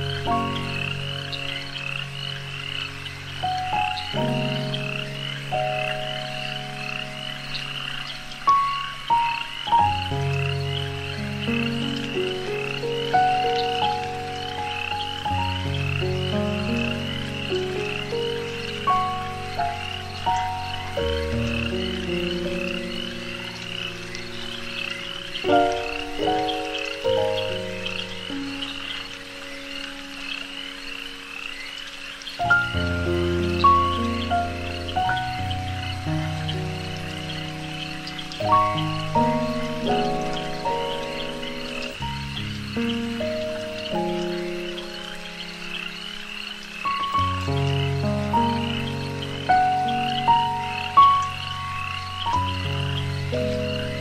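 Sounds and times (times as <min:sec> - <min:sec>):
ambient meditation music: 0:00.0 - 0:54.0
frogs croaking: 0:00.0 - 0:54.0.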